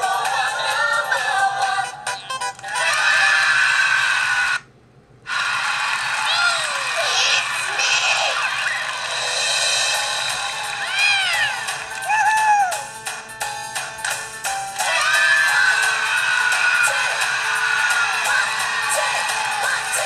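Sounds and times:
tinny children's show music: 0.0 - 3.4, 5.8 - 20.0
cartoon music with sliding tones: 0.1 - 2.9.

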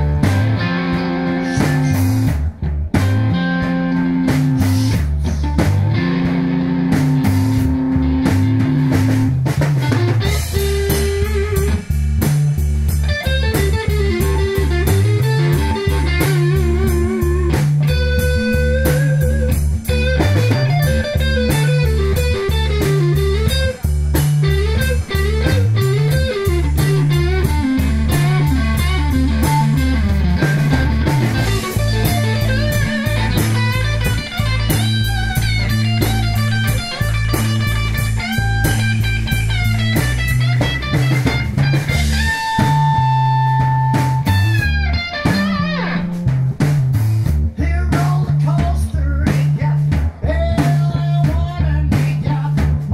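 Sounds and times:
electric guitar lead: 0.0 - 47.5
drum kit: 0.0 - 52.9
electric bass: 0.0 - 52.9.

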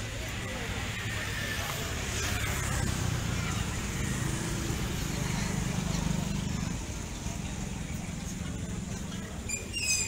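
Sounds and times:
crowd talking: 0.0 - 10.0
motor scooter passing: 0.2 - 9.5.

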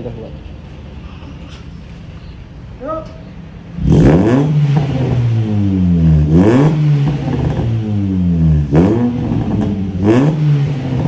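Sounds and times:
car engine revving: 3.5 - 11.0.

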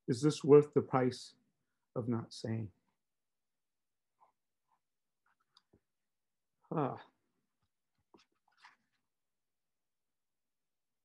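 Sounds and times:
soft rustle: 7.9 - 9.1.

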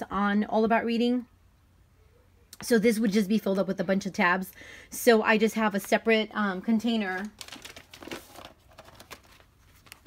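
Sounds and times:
plastic folder rustling and clicking: 6.9 - 10.0.

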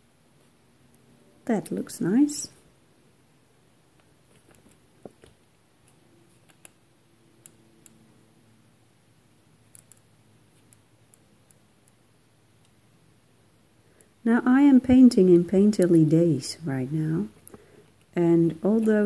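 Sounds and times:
faint ticks and clicks: 9.7 - 12.0.

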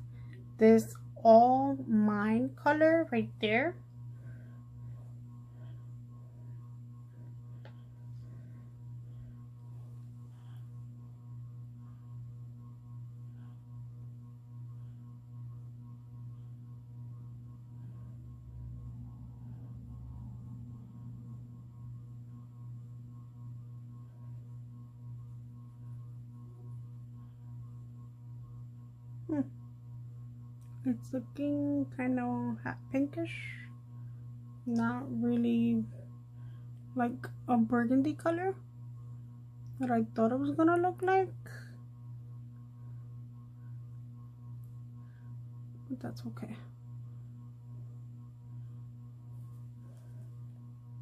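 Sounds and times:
ceiling fan humming: 0.0 - 51.0.

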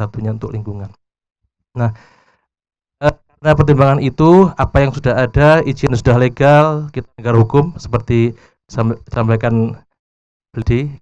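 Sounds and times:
man saying a word: 1.8 - 2.0
breathy exhale: 1.9 - 2.5, 8.4 - 8.6.

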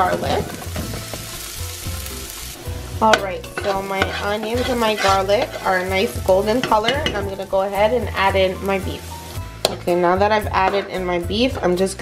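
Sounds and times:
onion and garlic sizzling in oil: 0.0 - 12.0.

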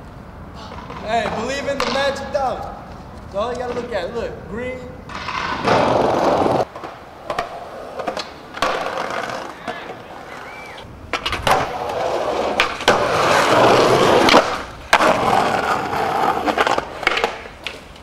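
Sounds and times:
skateboard wheels rolling on pavement: 0.0 - 18.0
skateboard clacks: 5.1 - 18.0.

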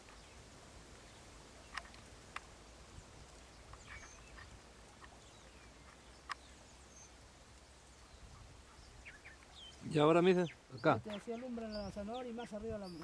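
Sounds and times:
faint bird calls: 0.0 - 13.0.

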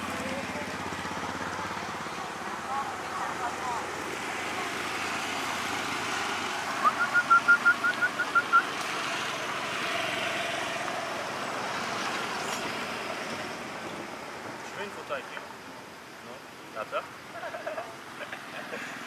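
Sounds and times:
steady outdoor hiss: 0.0 - 19.0.

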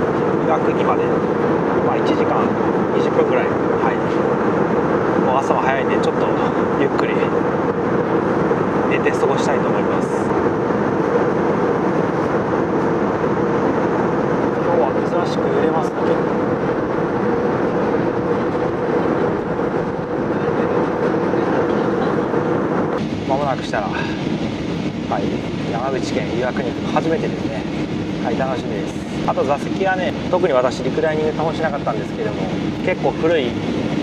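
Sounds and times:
aircraft cabin engine rush: 0.0 - 34.0
constant hum: 0.0 - 34.0.

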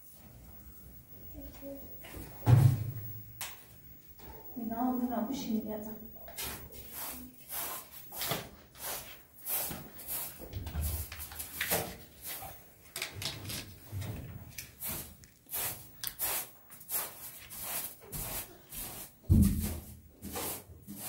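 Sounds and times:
hand broom sweeping floor: 0.0 - 0.9, 6.3 - 12.9, 13.7 - 21.0.

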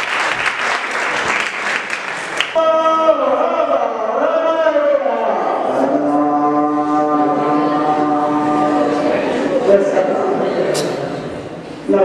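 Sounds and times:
man singing a long note: 2.6 - 9.4.

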